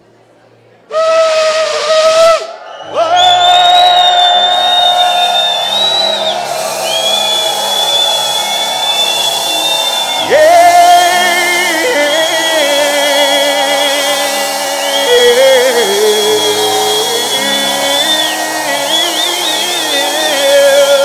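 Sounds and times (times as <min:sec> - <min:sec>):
ram's horn blasts: 0:04.5 - 0:21.0.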